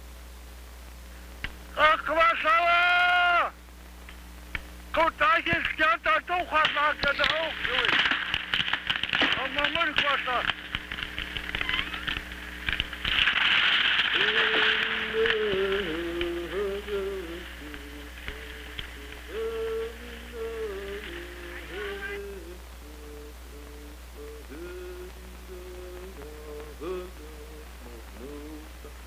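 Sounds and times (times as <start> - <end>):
crackling rustling noise: 0.0 - 1.8, 3.6 - 29.0
voice long held cry: 1.8 - 3.6
low humming tune: 3.5 - 29.0
person chanting: 14.1 - 29.0.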